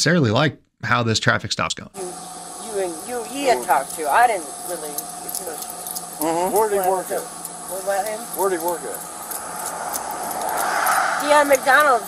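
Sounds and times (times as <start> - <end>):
pickup truck approaching: 9.0 - 12.0.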